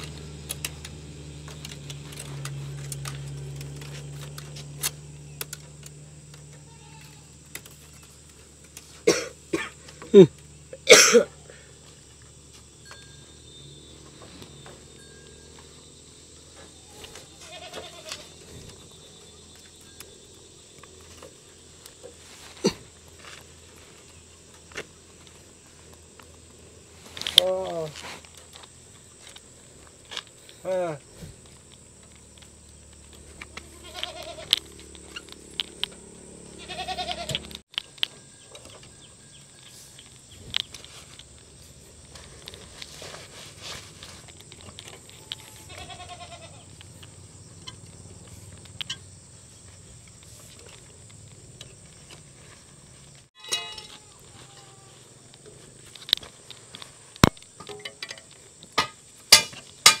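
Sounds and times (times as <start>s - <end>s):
animal bleating: 6.5s - 7.4s, 16.8s - 18.5s, 33.5s - 34.7s, 36.5s - 37.5s, 45.2s - 46.8s, 53.9s - 55.1s
sharp knocks and clinks: 53.4s - 54.1s, 57.5s - 60.0s.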